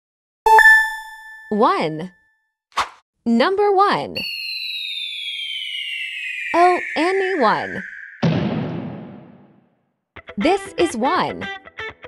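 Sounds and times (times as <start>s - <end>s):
descending whistle-like electronic tones: 4.2s - 9.6s.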